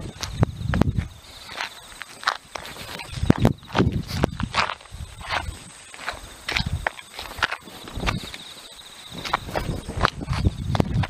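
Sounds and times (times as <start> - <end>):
sneakers scuffing on asphalt: 1.4 - 8.5.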